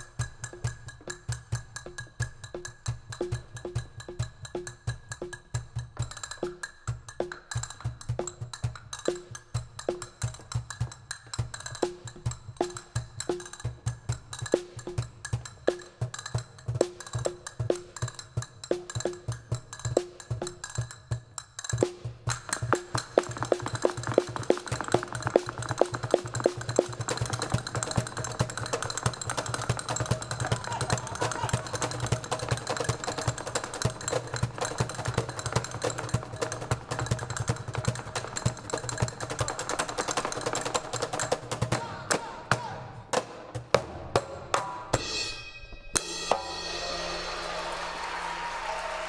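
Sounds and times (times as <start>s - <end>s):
fast djembe drumming: 0.1s - 44.0s
audience applause: 47.0s - 49.0s.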